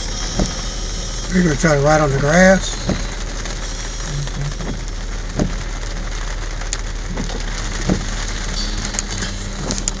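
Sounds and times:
low road rumble: 0.0s - 10.0s
rain on car windshield and roof: 0.0s - 10.0s
sharp raindrop taps: 0.0s - 10.0s.

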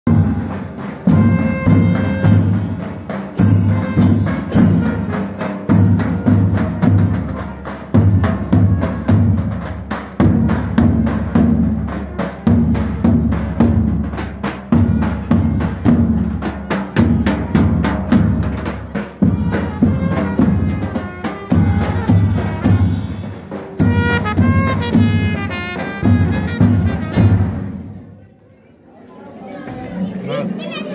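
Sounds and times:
drums beating steady rhythm: 0.0s - 28.2s
brass trumpets playing melody: 1.1s - 2.7s, 23.8s - 27.8s.

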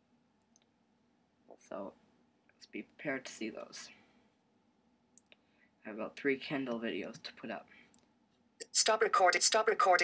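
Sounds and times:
person speaking: 1.5s - 4.2s, 5.2s - 8.0s, 8.6s - 10.0s.

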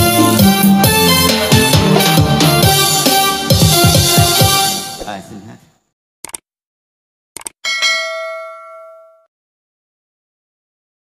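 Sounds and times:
notification bell ding: 7.6s - 9.3s.

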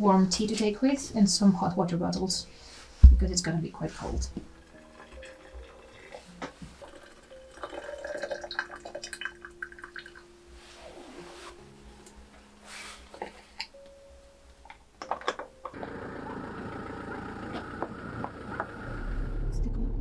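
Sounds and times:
hot water pouring: 4.6s - 10.2s
clinks and splashes: 4.6s - 10.3s.

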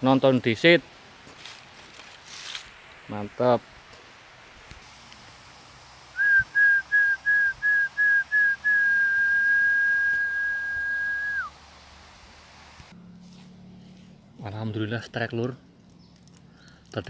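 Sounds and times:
whistle pips and held note: 6.2s - 11.5s.

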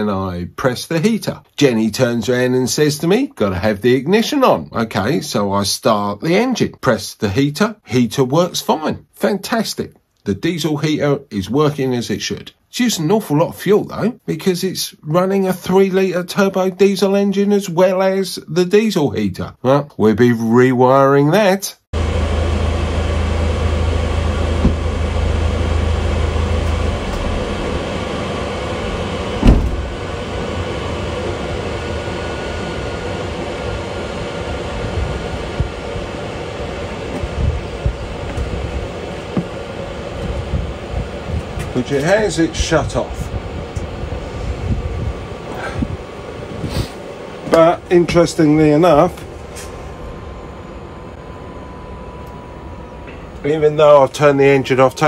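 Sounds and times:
heater fan humming: 0.0s - 19.1s, 22.0s - 55.0s
faint high whine: 22.0s - 55.0s
loud thump: 24.4s - 25.2s, 29.4s - 30.0s.

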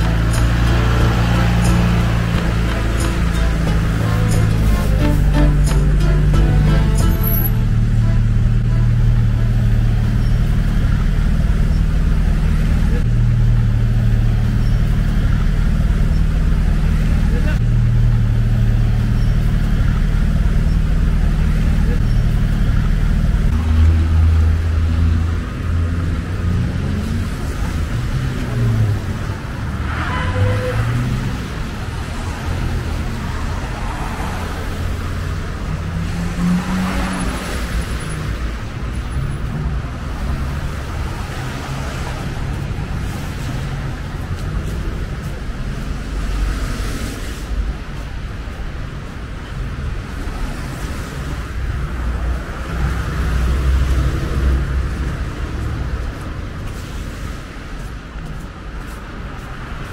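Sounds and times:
cars passing: 0.0s - 59.9s
vehicle engine rumble: 0.0s - 59.9s.

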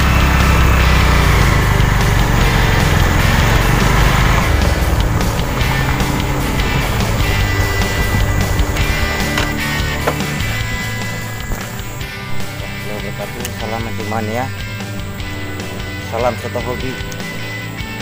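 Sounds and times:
background music: 0.0s - 18.0s
vehicle rumbling on dirt road: 0.0s - 18.0s.

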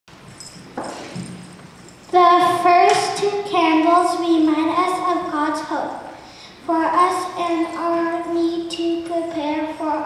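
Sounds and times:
low room noise: 0.1s - 10.0s.

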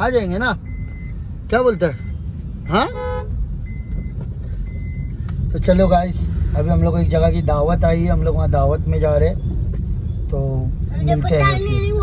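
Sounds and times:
car rumble from inside cabin: 0.0s - 12.0s.

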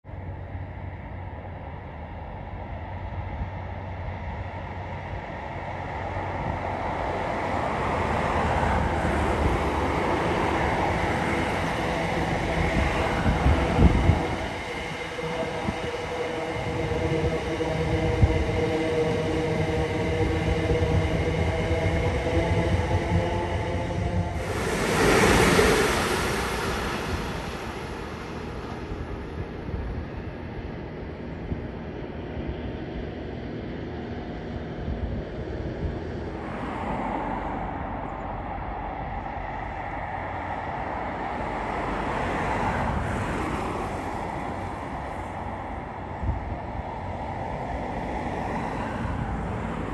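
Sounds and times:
train whine: 0.1s - 49.9s
train wheels rumbling on rails: 0.2s - 49.9s
rushing burst: 23.7s - 29.2s.

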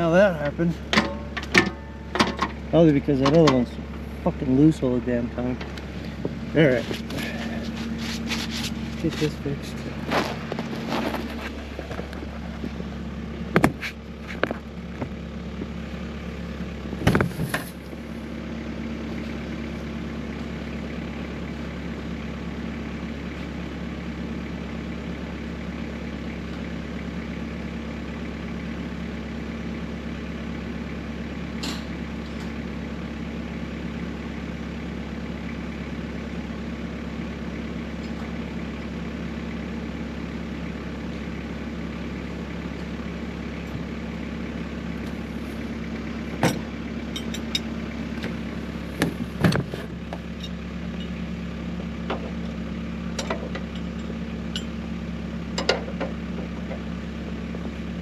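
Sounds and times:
snowblower engine idling: 0.0s - 58.0s
sharp knocks and clanks: 0.9s - 2.6s, 55.6s - 56.8s.

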